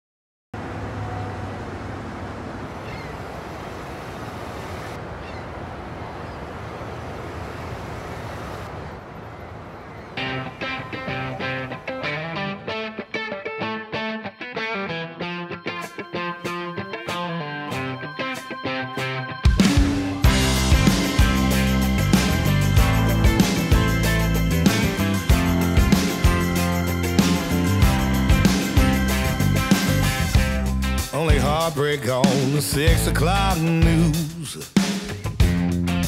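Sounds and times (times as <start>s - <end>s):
car driving road noise: 0.6s - 12.5s
wind: 0.6s - 12.7s
guitar picking a riff: 10.2s - 31.6s.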